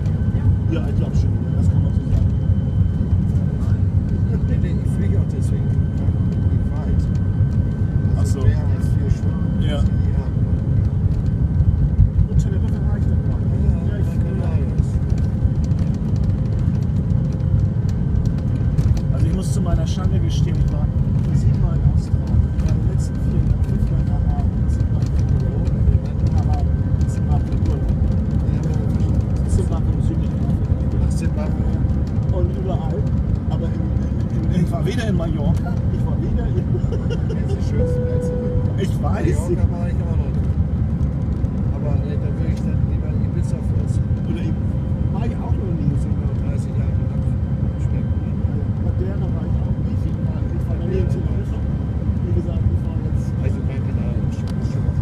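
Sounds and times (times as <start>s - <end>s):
low rumble of jet engines: 0.0s - 55.0s.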